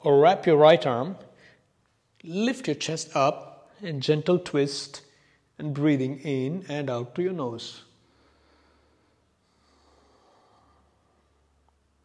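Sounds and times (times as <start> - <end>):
soft breath through nose: 8.0 - 11.6.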